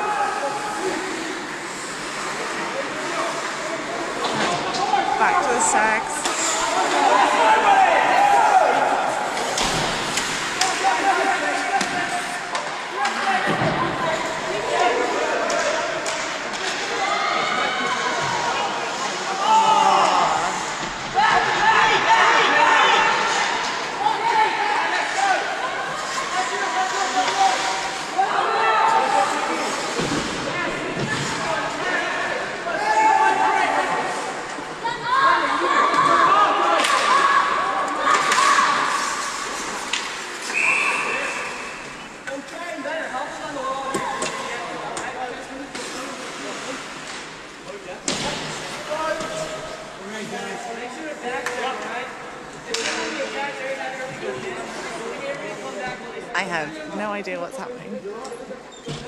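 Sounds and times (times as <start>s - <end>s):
players and spectators shouting: 4.7s - 9.6s, 19.3s - 29.5s, 31.6s - 39.2s
whistle blast: 40.5s - 41.7s.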